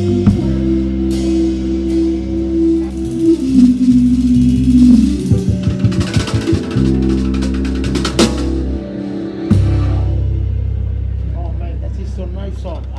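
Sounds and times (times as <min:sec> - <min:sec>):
live band playing: 0:00.0 - 0:12.9
loud drum kit hit: 0:02.8 - 0:08.9.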